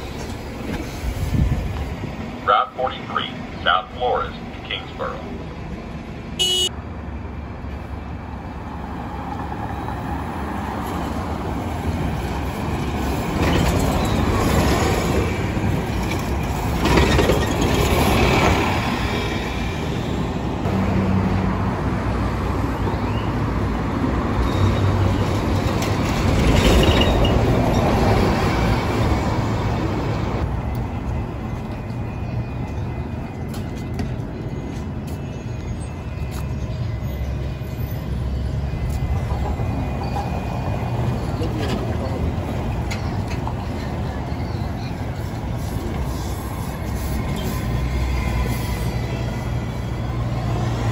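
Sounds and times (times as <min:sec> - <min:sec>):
bus engines pulling away: 0:00.0 - 0:50.9
street traffic: 0:00.0 - 0:50.9.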